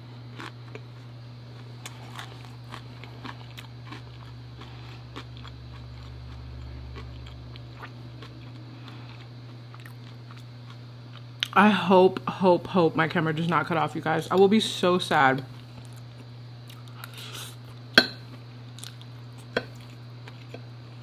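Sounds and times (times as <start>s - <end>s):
steady low hum: 0.0s - 21.0s
person chewing food: 0.3s - 11.6s, 15.6s - 21.0s.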